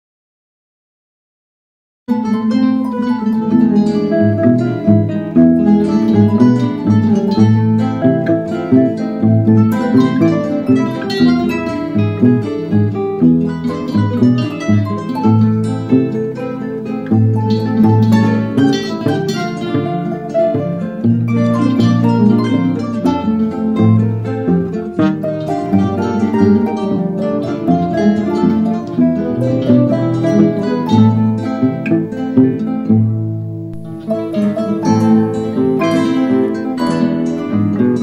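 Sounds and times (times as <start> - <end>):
harp: 2.1 - 33.1
guitar ensemble playing: 2.1 - 38.0.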